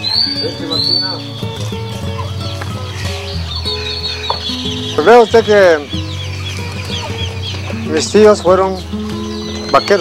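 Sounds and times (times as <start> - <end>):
background music sustained notes: 0.0 - 10.0
chickens clucking: 0.0 - 10.0.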